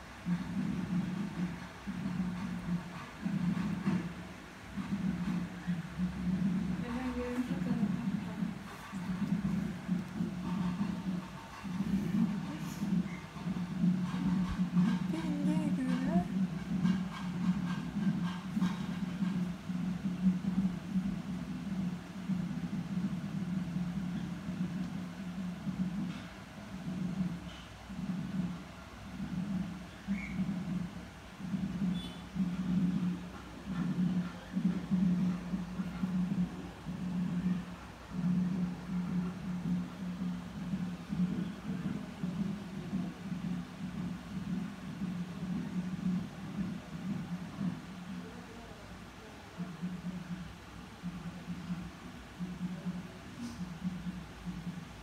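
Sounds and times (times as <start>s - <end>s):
music: 0.0s - 48.3s, 49.6s - 55.0s.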